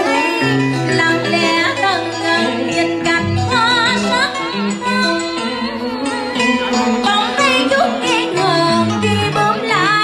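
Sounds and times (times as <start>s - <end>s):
amplified plucked strings: 0.0s - 10.0s
woman singing: 0.0s - 10.0s
sustained bass line: 3.1s - 4.2s.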